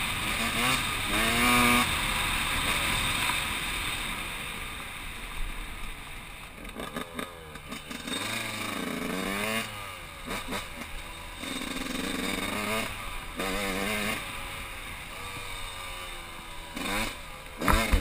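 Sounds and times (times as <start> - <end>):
motorcycle engine revving: 0.0 - 4.6, 5.8 - 18.0.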